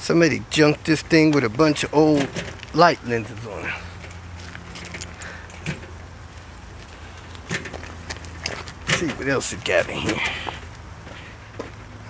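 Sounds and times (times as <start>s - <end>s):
low engine-like hum: 0.0s - 12.0s
footsteps on gravel: 1.2s - 12.0s.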